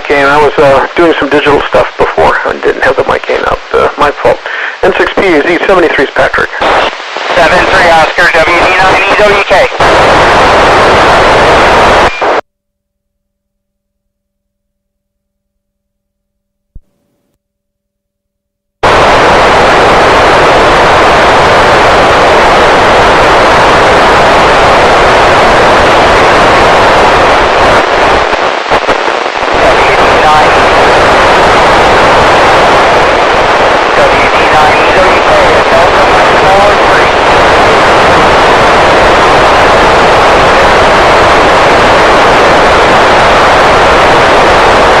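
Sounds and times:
radio static hiss: 0:00.0 - 0:12.4, 0:18.8 - 0:45.0.

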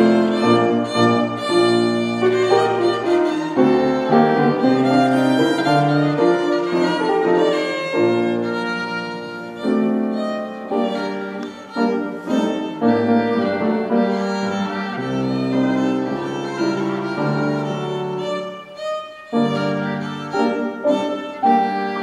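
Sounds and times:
piano accompaniment: 0:00.0 - 0:22.0
violin melody: 0:00.0 - 0:22.0.

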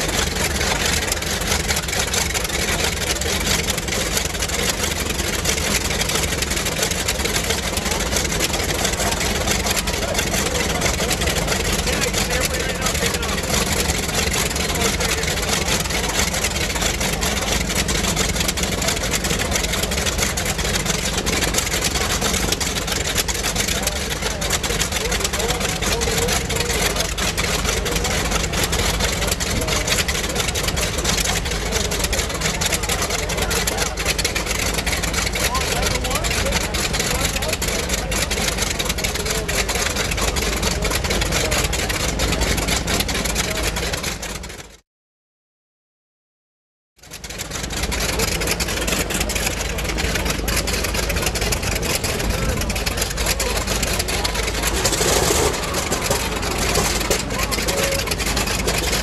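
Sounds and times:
engine running at low power: 0:00.0 - 0:44.8, 0:47.0 - 0:59.0
background voices: 0:48.8 - 0:59.0.

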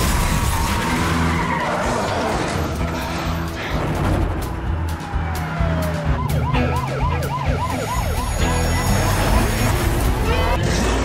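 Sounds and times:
police siren yelp: 0:04.6 - 0:10.6.

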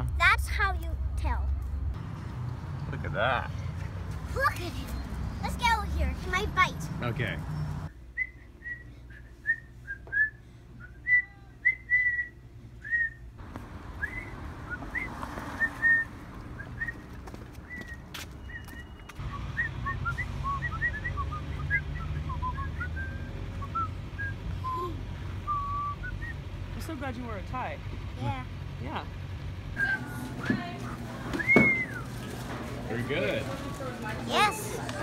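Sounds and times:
person whistling a tune: 0:08.2 - 0:13.2, 0:17.7 - 0:26.4, 0:31.3 - 0:32.0.

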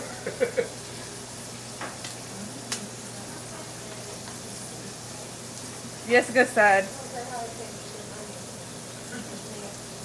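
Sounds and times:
food sizzling in pans: 0:00.0 - 0:10.0.

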